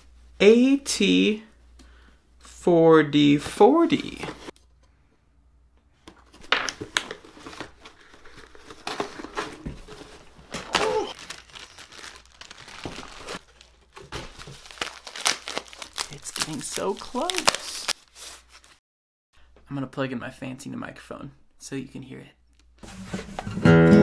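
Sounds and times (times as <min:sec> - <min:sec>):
plastic and paper crinkling: 0:06.1 - 0:18.8.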